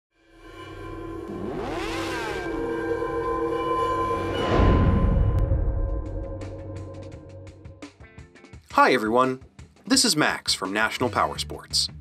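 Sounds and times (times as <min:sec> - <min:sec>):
droning synth pad: 0:00.2 - 0:07.7
pitch sweep: 0:00.3 - 0:07.7.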